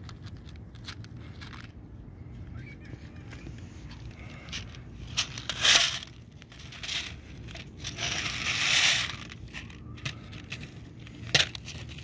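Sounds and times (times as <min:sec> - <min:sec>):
plastic plate crinkling: 0:03.0 - 0:12.0.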